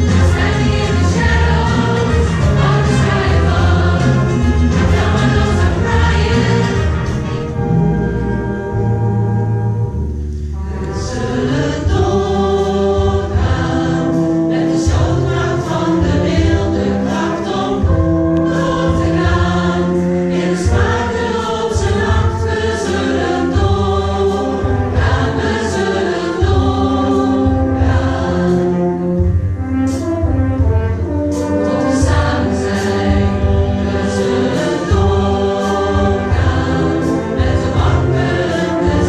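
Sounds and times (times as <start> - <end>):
choir singing held chords: 0.0 - 39.0
orchestra playing: 0.0 - 39.0
steady low beat: 0.0 - 39.0.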